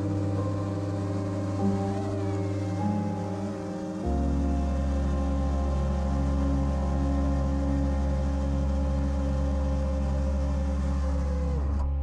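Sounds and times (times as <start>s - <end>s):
ambient music with held tones: 0.0s - 12.0s
pulsing low bass line: 0.0s - 12.0s.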